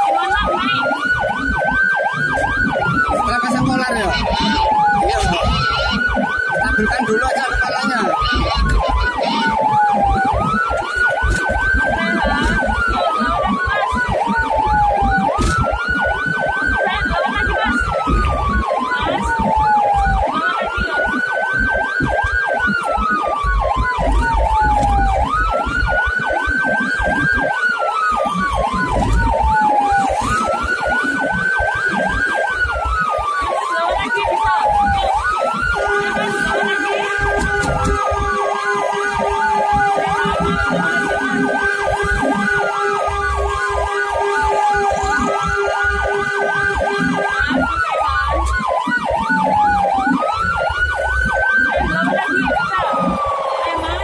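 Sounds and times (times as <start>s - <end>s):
ambulance siren wailing: 0.0s - 54.0s.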